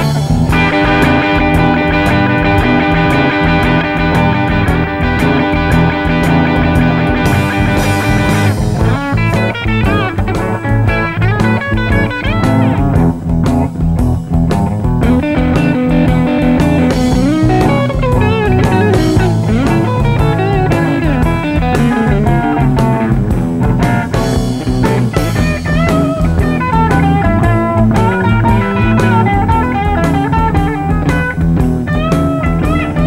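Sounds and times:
electric blues band playing: 0.0s - 33.0s
electric guitar bending notes: 0.0s - 33.0s.

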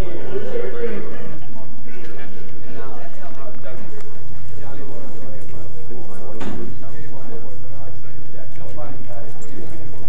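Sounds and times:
indistinct chatter: 0.0s - 10.0s
steady low hum: 0.0s - 10.0s.

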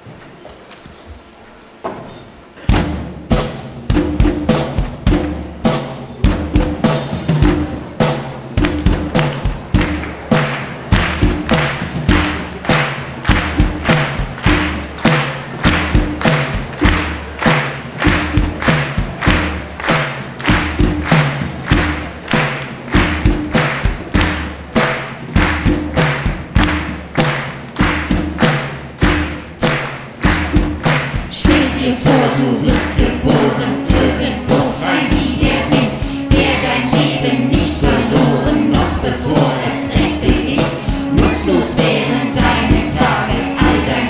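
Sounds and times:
steady drum beat: 2.4s - 44.0s
pop band playing: 3.3s - 44.0s.

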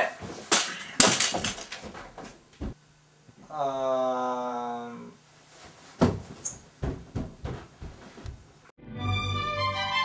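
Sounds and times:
dull knocks: 6.0s - 8.5s.

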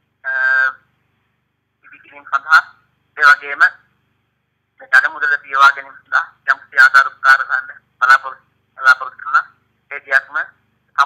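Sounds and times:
man's voice over telephone: 0.2s - 0.9s, 1.8s - 3.9s, 4.8s - 11.0s.

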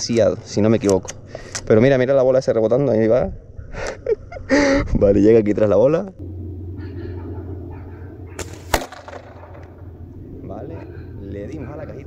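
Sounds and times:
low steady hum: 5.7s - 12.0s
airsoft rifle clack: 8.4s - 9.8s.

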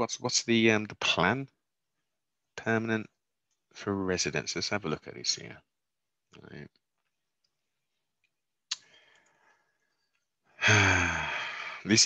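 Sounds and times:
loud voiced sigh: 10.6s - 11.8s
man's sharp intake of breath: 10.6s - 11.9s.

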